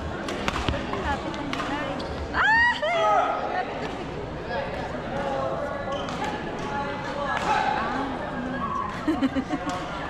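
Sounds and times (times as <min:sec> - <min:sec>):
background chatter: 0:00.0 - 0:10.0
shoes squeaking on court floor: 0:01.3 - 0:02.4, 0:05.7 - 0:06.5.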